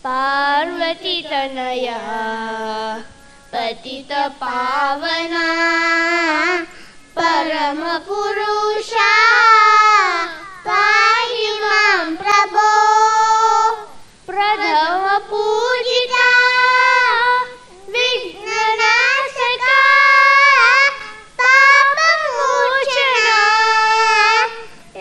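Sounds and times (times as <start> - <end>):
children singing in unison: 0.0 - 25.0.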